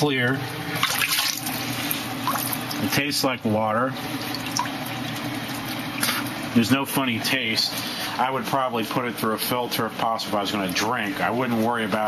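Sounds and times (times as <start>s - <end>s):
low steady hum: 0.0s - 12.0s
water trickling into a plastic bucket: 4.1s - 6.4s.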